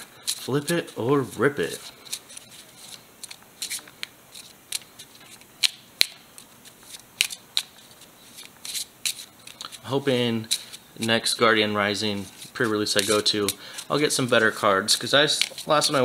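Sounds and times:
cards being shuffled: 0.0 - 11.2, 12.0 - 16.0.

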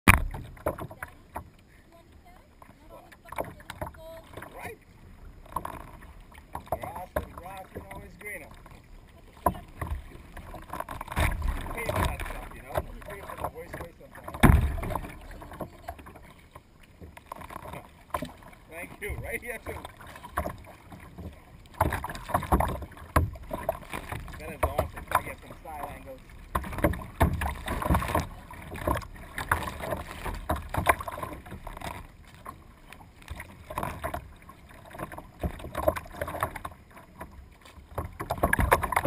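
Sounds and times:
knocks and slaps against hull: 0.0 - 1.5, 5.5 - 32.6, 33.2 - 39.0
kayak paddle splashing water: 0.0 - 39.0
heavy low thump: 14.3 - 15.1.

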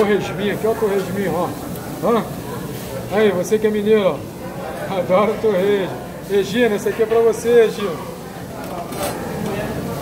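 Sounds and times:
restaurant room noise: 0.0 - 10.0.

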